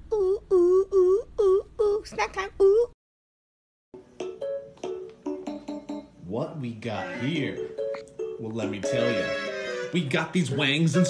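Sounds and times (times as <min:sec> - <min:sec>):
picked string notes: 0:06.6 - 0:11.0.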